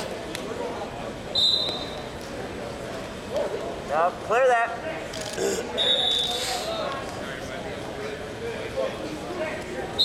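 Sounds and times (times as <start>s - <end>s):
faint background voices: 4.8s - 10.0s.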